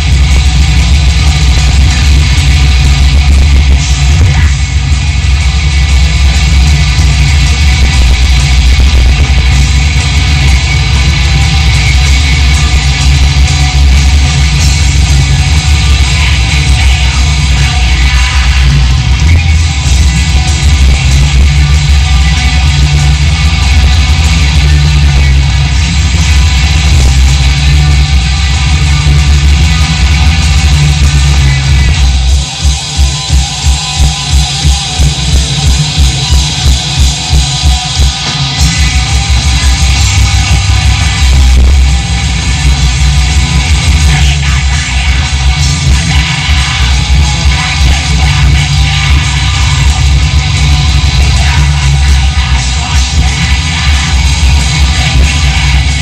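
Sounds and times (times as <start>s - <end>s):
metal band playing live: 0.0s - 56.0s.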